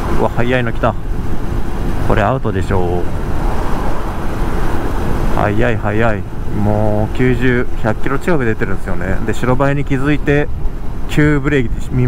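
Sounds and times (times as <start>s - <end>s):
motorcycle engine and road noise: 0.0s - 12.0s
wind rush: 0.0s - 12.0s.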